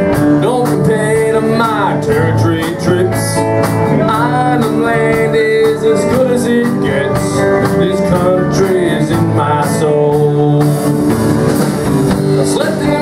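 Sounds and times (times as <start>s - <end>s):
acoustic guitars: 0.0s - 13.0s
drums: 0.0s - 13.0s
keyboard: 0.0s - 13.0s.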